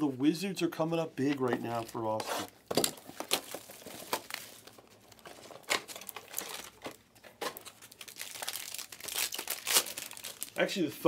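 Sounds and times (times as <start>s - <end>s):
foil wrapper crinkling: 2.8s - 10.7s.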